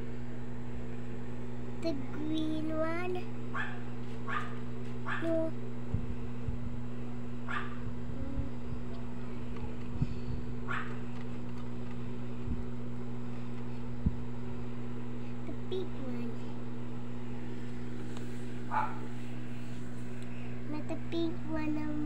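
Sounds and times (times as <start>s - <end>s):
low electrical hum: 0.0s - 22.0s.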